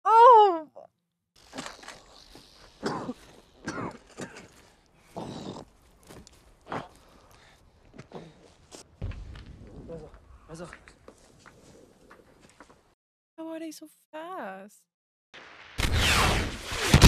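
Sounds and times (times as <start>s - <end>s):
strained breaths: 6.6s - 8.8s.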